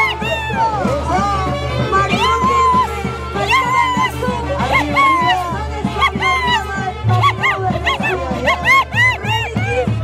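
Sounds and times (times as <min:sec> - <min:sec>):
low drum beat: 0:00.0 - 0:10.0.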